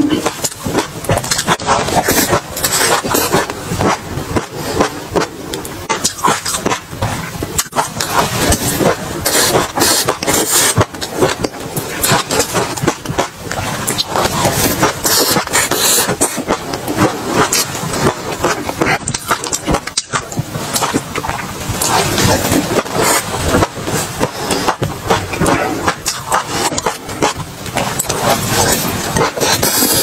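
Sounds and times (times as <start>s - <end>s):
chewing crunchy food: 0.0s - 30.0s.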